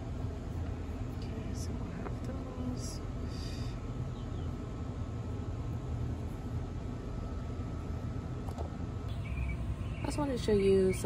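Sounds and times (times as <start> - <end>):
low outdoor rumble: 0.0 - 11.0.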